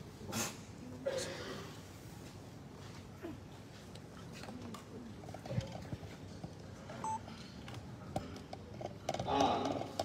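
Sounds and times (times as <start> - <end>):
murmur of people: 0.0 - 10.0
short beep: 7.0 - 7.2.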